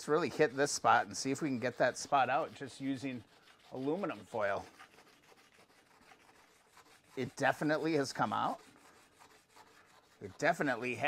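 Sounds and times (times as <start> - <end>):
foil scrubbing on metal: 0.0 - 11.0.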